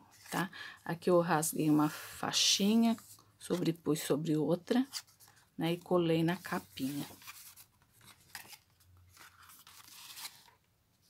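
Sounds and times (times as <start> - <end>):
paper pages rustling: 6.4 - 10.7.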